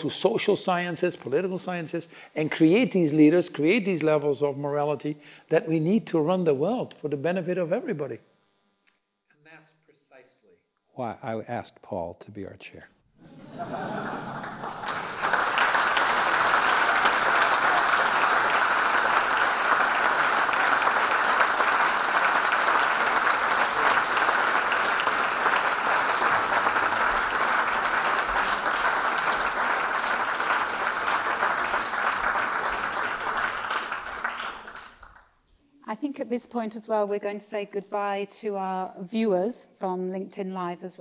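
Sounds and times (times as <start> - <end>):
audience laughing: 13.2 - 15.3
audience applauding: 13.4 - 35.3.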